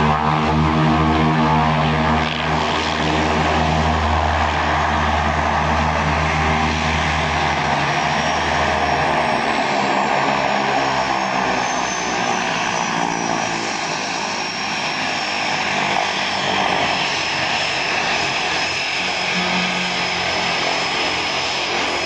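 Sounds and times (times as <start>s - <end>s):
high turbine whine: 0.0s - 22.0s
propeller drone: 0.0s - 22.0s.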